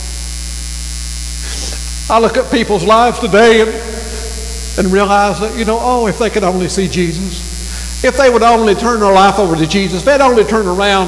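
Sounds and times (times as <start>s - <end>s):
electrical mains hum: 0.0s - 11.0s
hiss: 1.3s - 2.0s.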